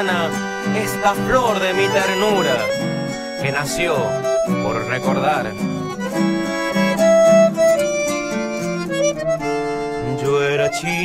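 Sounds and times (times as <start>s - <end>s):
acoustic guitar accompaniment: 0.0s - 11.0s
button accordion melody: 0.0s - 11.0s.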